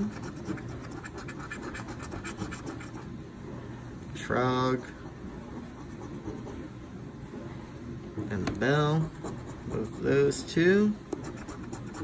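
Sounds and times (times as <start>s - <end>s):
coin scratching lottery ticket: 0.0s - 3.0s, 11.2s - 12.0s.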